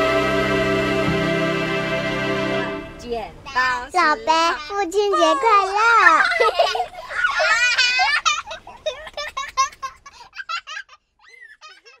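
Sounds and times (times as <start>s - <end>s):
girl and woman laughing: 5.2s - 12.0s.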